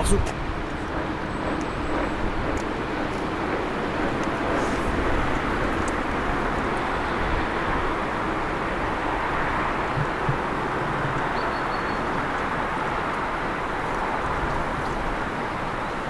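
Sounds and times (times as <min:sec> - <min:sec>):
diesel railcar rolling slowly: 0:00.0 - 0:16.0.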